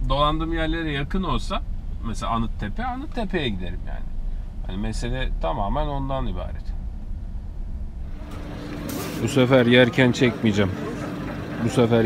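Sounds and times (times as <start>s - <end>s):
car engine and road rumble: 0.0s - 12.0s
faint steady hum: 0.0s - 12.0s
short burst of noise: 8.1s - 9.6s.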